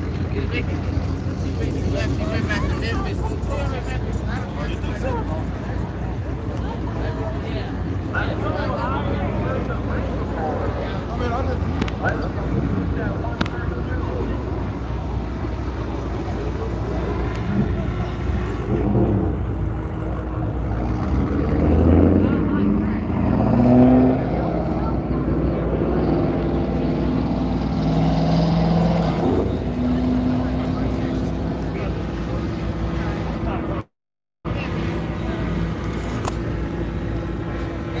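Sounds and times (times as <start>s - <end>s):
car engines running: 0.0s - 33.9s, 34.5s - 38.0s
crowd voices: 0.0s - 33.9s, 34.5s - 38.0s.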